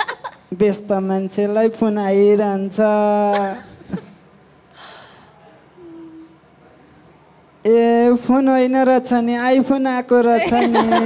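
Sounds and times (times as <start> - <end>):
person gasping: 4.7 - 6.3
person humming: 5.8 - 6.4.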